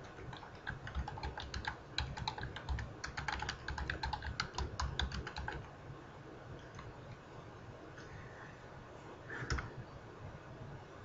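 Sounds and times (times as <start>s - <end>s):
typing on computer keyboard: 0.0s - 5.7s.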